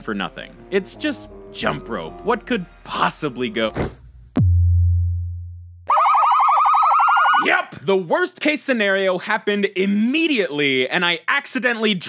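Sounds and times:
deep bass boom: 3.7 - 5.9
warbling alarm siren: 5.9 - 7.5.

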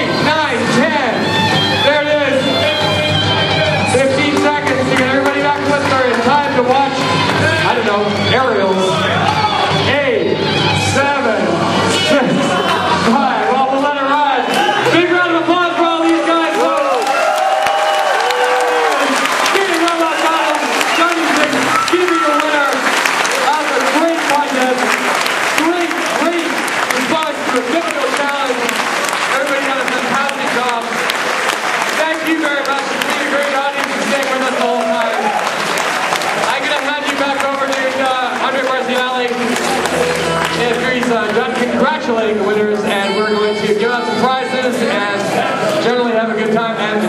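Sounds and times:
audience applauding: 0.0 - 9.8, 12.4 - 45.8
people talking and calling out: 0.0 - 47.0.

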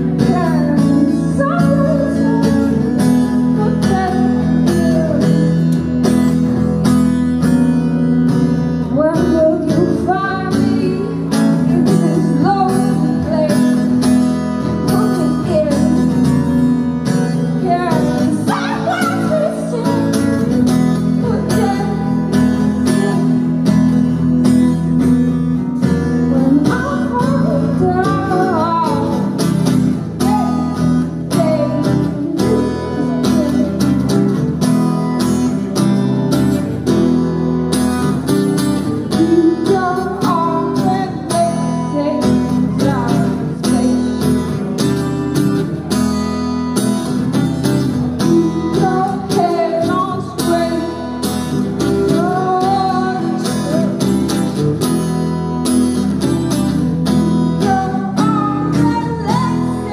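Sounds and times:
woman singing: 0.0 - 6.8, 7.4 - 35.6, 36.3 - 44.9, 47.2 - 59.9
acoustic guitar strumming: 0.0 - 59.9.

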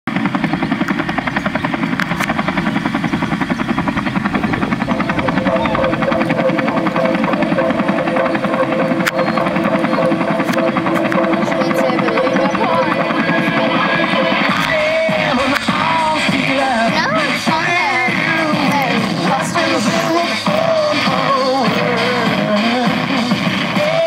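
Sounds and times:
helicopter rotor chopping: 0.1 - 24.0
sustained musical tones: 0.2 - 23.7.

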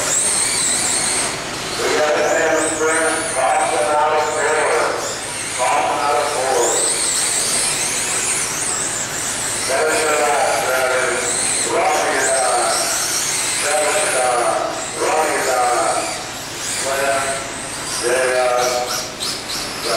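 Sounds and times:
electric rc car motors whining: 0.0 - 19.9.

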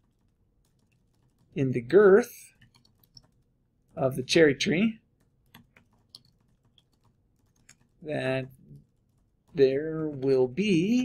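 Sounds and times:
typing on computer keyboard: 0.0 - 1.6, 2.5 - 3.5, 5.2 - 8.0.

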